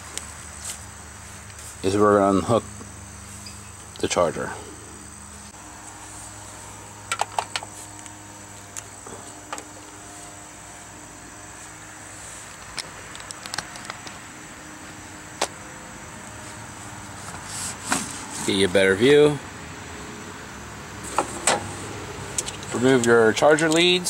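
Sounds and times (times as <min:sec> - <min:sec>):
steady hum: 0:00.0 - 0:23.6.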